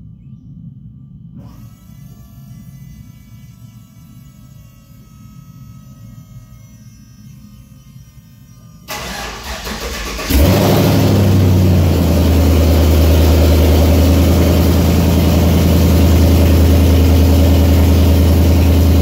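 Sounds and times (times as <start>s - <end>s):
truck starter cranking: 8.9s - 11.6s
truck engine idling: 9.0s - 19.0s.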